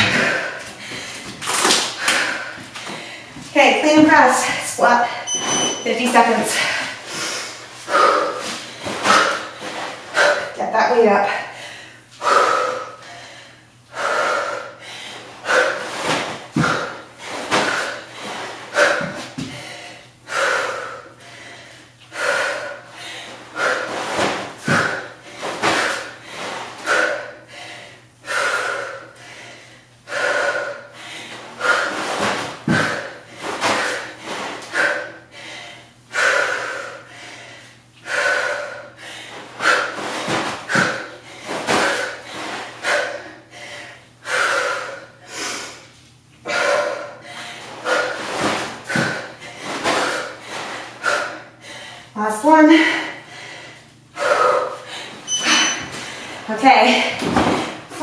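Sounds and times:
woman breathing hard: 0.0 - 5.3, 6.0 - 10.6, 11.2 - 58.0.

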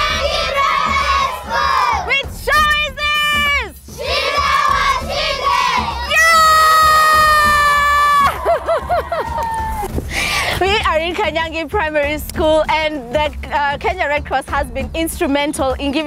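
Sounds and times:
children shouting together: 0.0 - 2.2, 4.0 - 8.6.

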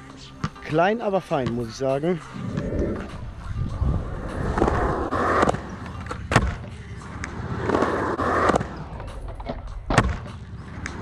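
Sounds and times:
skateboard wheels rolling on concrete: 0.0 - 11.0
skateboard clack: 4.2 - 11.0.

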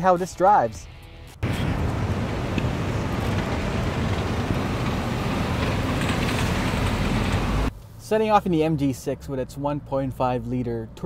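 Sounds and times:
car engine and tyres running: 1.4 - 11.0.

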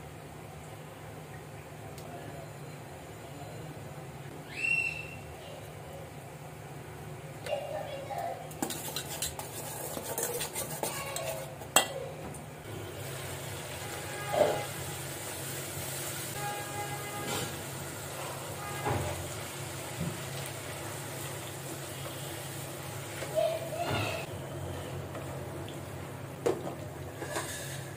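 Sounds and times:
low sizzle: 0.0 - 27.9
spatula scraping a pan: 8.5 - 11.9, 27.1 - 27.9
utensil clinking in metal bowl: 8.5 - 12.0.

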